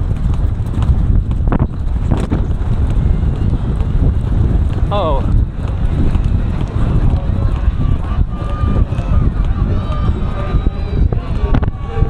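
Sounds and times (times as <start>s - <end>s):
horse hoofbeats on turf: 0.0s - 11.5s
wind buffeting microphone: 0.0s - 12.0s.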